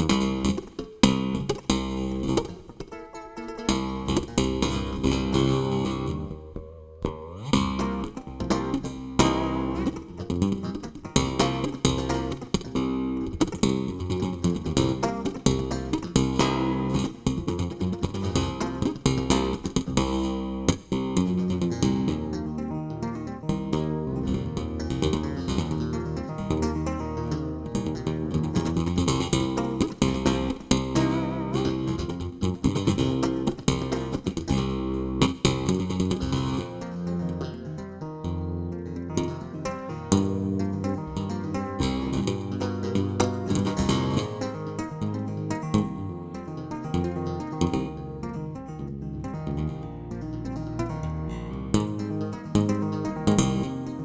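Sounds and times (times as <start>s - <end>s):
electric bass guitar: 0.0s - 54.0s.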